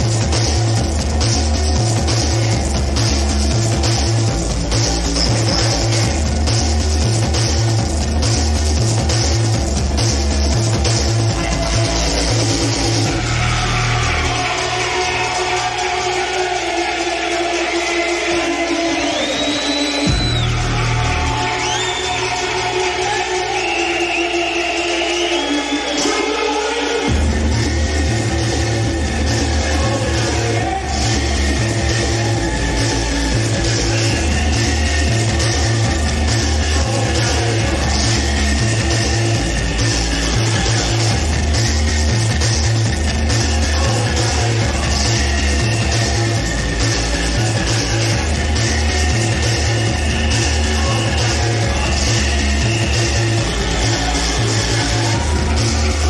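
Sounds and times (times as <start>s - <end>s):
electronic breakbeat music: 0.0s - 56.0s.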